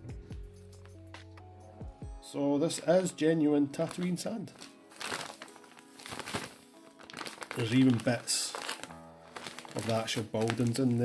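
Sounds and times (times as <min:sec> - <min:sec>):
soft background music: 0:00.0 - 0:11.0
plastic bag of sand crinkling: 0:03.7 - 0:11.0.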